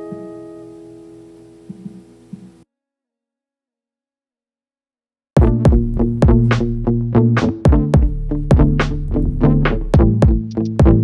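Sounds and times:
acoustic guitar chord ringing: 0.0 - 2.6
soft low thumps: 5.4 - 6.6, 9.9 - 11.0.

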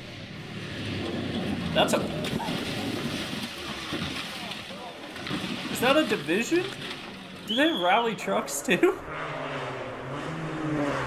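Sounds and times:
engine and gravel rush: 0.0 - 11.0.

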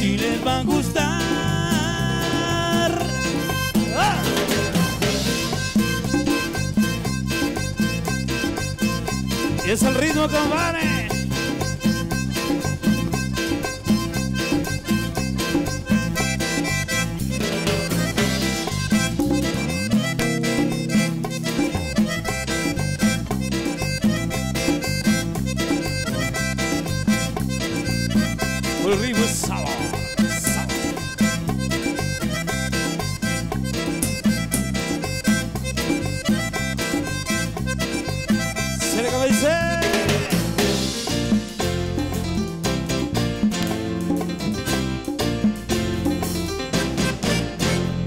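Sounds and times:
bass: 0.0 - 48.0
button accordion: 0.0 - 48.0
guitar: 0.0 - 48.0.

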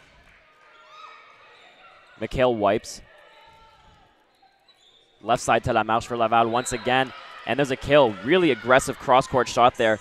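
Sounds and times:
volleyball rally in gym: 0.0 - 10.0
commentary speech: 5.2 - 10.0.

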